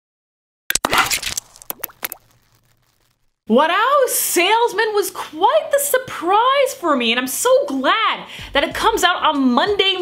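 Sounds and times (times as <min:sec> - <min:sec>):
sharp pops and clicks: 0:00.7 - 0:03.4.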